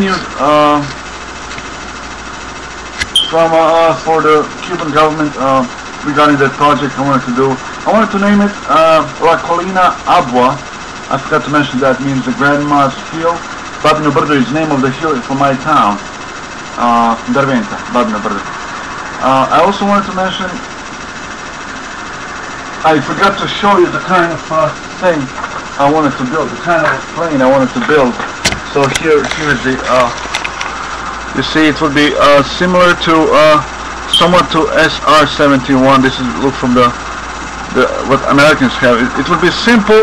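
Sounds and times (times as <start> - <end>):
low machine hum with hiss: 0.0 - 40.0.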